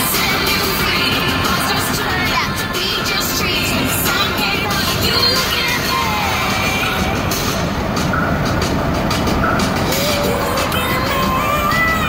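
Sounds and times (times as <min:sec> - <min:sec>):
road noise inside truck cab: 0:00.0 - 0:12.0.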